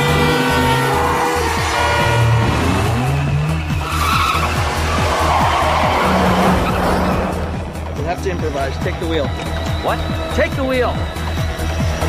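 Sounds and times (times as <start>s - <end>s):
pulsing music score: 0.0s - 12.0s
tyres skidding: 0.0s - 12.0s.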